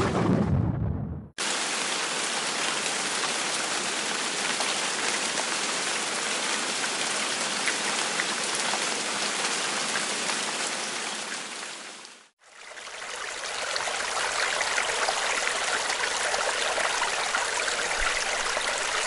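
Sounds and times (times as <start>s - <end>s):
heavy rain: 1.4s - 12.3s, 13.3s - 19.0s.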